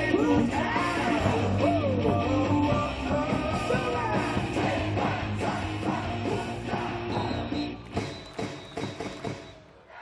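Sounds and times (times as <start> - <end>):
rock cheer song over loudspeakers: 0.0 - 9.7.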